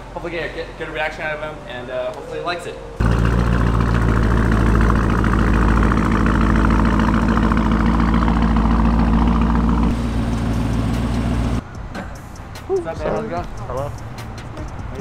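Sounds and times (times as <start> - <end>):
car engine running at low revs: 3.0 - 11.6.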